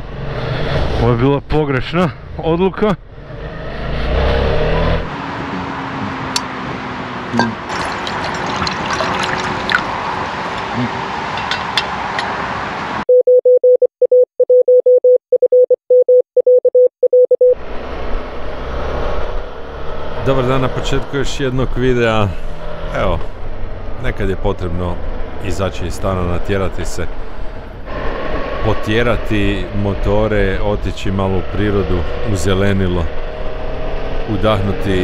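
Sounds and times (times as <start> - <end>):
outdoor noise: 2.1 - 13.0, 22.4 - 34.4
morse code beeps: 13.1 - 17.6.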